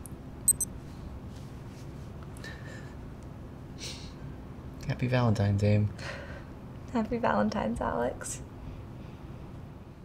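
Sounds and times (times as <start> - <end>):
short sharp clicks: 0.5 - 0.7.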